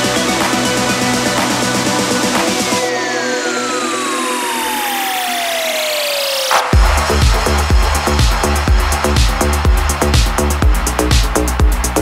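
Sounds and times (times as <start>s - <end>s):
synth tone gliding down: 2.8s - 8.6s.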